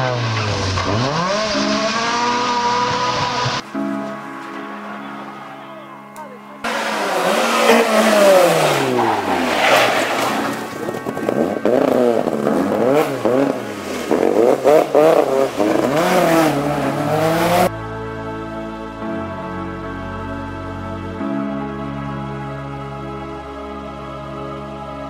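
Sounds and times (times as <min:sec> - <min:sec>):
rally car engine revving: 0:00.0 - 0:17.7.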